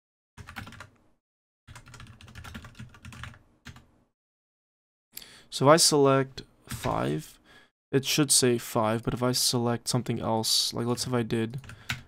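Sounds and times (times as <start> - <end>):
typing on computer keyboard: 0.4 - 0.9, 1.7 - 3.9.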